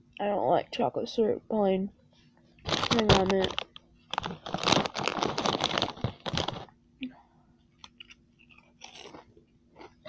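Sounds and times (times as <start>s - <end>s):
person chewing chips: 2.6s - 6.7s, 7.8s - 10.0s.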